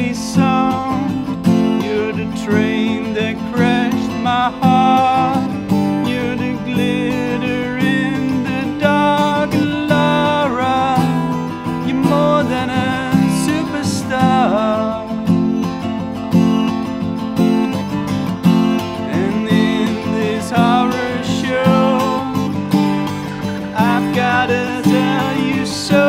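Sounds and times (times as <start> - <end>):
strummed acoustic guitar: 0.0 - 26.0.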